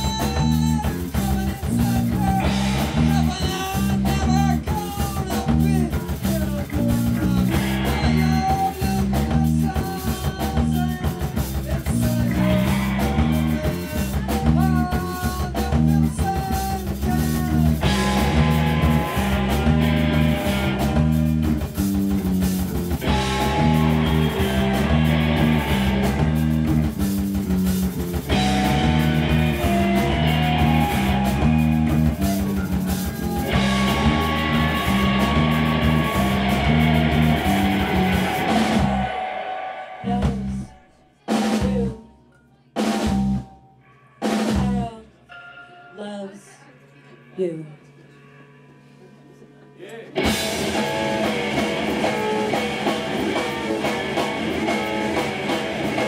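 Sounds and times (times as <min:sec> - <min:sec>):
electric guitars: 0:00.0 - 0:41.5, 0:50.1 - 0:56.0
drum kit: 0:00.0 - 0:42.1, 0:42.8 - 0:43.6, 0:44.2 - 0:45.0, 0:50.1 - 0:56.0
bass guitar: 0:00.0 - 0:45.0, 0:50.0 - 0:56.0.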